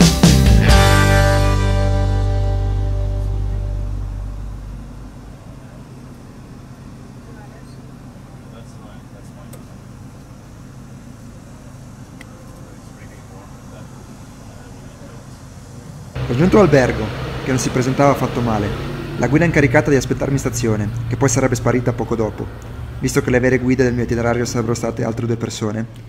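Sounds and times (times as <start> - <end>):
background music: 0.0 - 5.2
street traffic rumble: 0.0 - 26.0.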